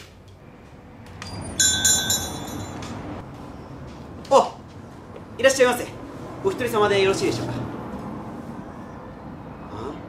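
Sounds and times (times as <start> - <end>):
shop door bell chime: 1.2 - 3.0.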